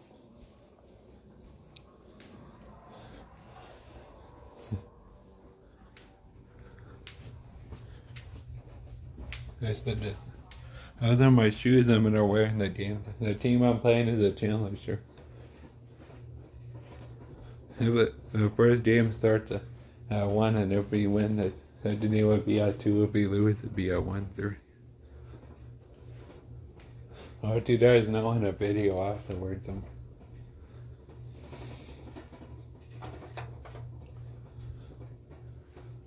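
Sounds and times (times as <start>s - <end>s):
faint low hum: 0.0s - 36.0s.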